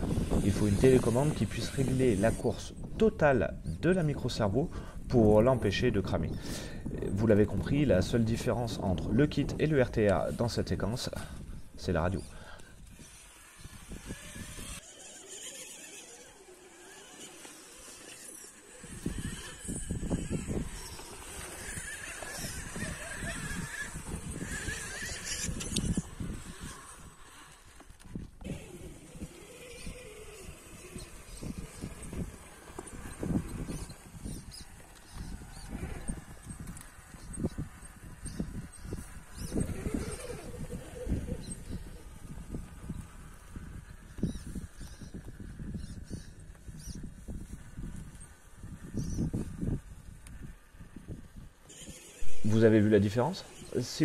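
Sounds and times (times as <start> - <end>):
rc car driving over rock: 0.0 - 2.9, 7.1 - 54.0.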